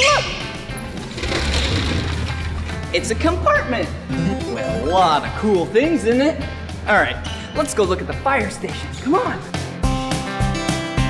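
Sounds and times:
background music: 0:00.0 - 0:11.0
roll-up door sliding open: 0:00.8 - 0:02.8.

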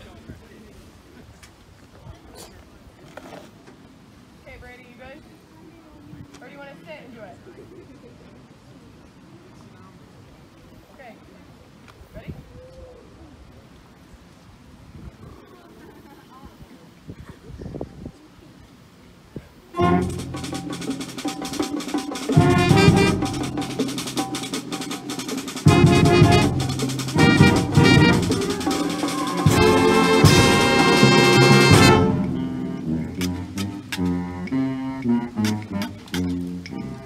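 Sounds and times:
faint voices talking: 0:00.0 - 0:37.0
wind on microphone: 0:14.1 - 0:15.6, 0:16.4 - 0:18.3
concert band held chord: 0:19.8 - 0:35.8
drum strokes: 0:19.8 - 0:36.8.

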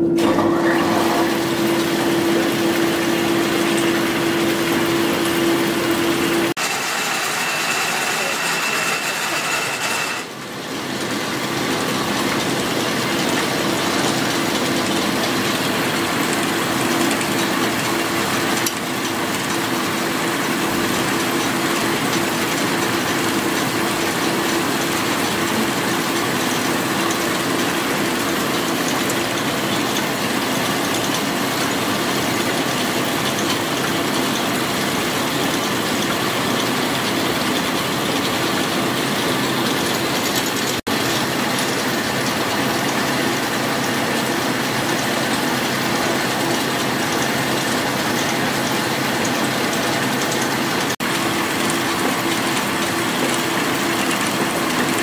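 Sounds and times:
low machine hum: 0:00.0 - 0:06.6
whirr of spinning spindles: 0:00.0 - 0:16.4.

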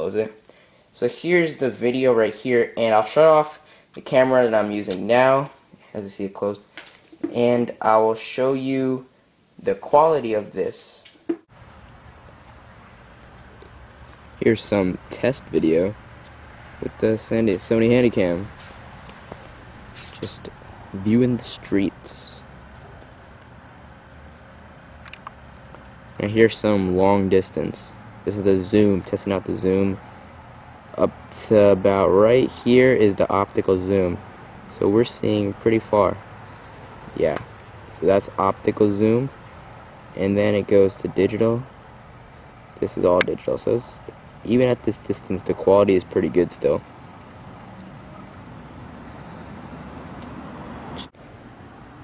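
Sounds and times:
faint hum: 0:00.0 - 0:52.0
low rumble and hiss: 0:00.0 - 0:52.0.

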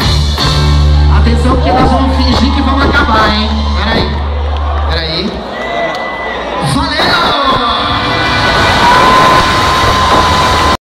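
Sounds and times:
live band playing: 0:00.0 - 0:04.4, 0:05.4 - 0:10.8
concert crowd cheering: 0:00.0 - 0:10.8.

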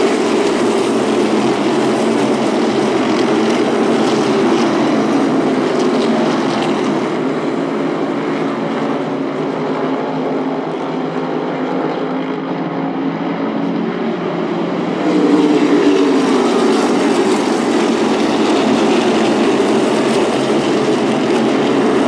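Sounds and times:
race car engines passing: 0:00.0 - 0:22.0.

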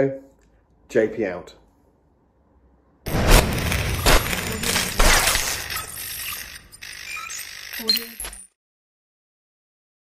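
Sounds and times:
loud hit: 0:03.1 - 0:05.6
short electronic tones: 0:04.5 - 0:08.5.

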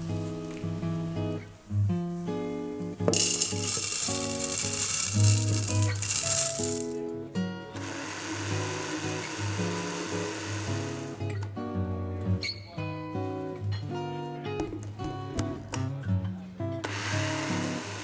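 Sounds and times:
acoustic guitar music: 0:00.0 - 0:18.0
oats pouring into plastic cup: 0:03.1 - 0:07.0.

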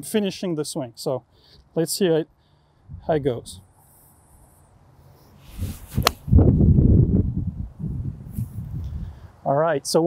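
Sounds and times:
golf club swishing: 0:04.1 - 0:06.6
golf club striking ball: 0:06.0 - 0:06.3.

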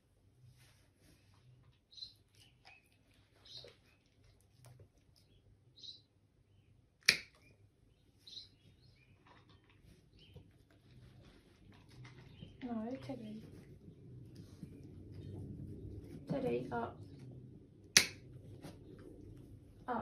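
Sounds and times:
nail clipper snip: 0:07.0 - 0:07.4, 0:18.0 - 0:18.2.

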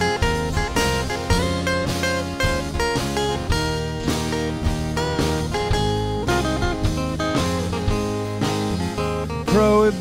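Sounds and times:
drum kit: 0:00.0 - 0:10.0
melody of bending notes: 0:00.0 - 0:10.0
strummed acoustic guitars: 0:00.0 - 0:10.0.

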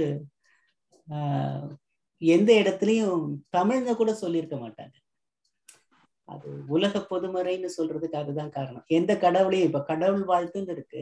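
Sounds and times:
person speaking: 0:00.0 - 0:00.3, 0:01.1 - 0:05.0, 0:06.3 - 0:11.0.

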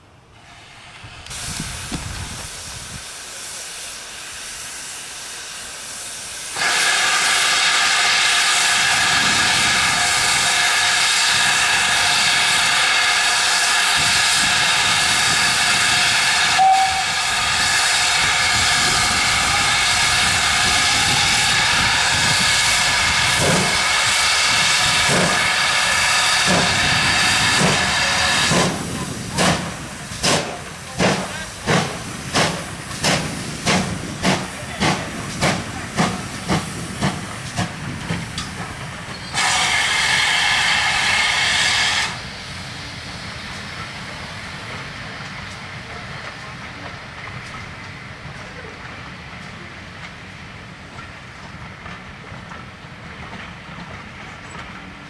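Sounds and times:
steam venting hiss: 0:00.4 - 0:53.6
steam locomotive exhaust beats: 0:00.4 - 0:55.0.

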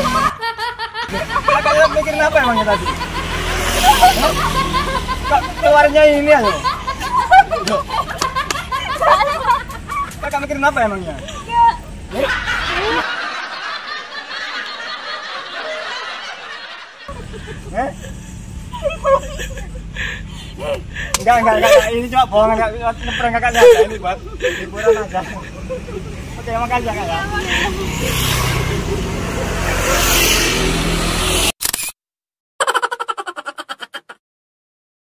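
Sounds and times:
street traffic noise: 0:00.0 - 0:31.9.

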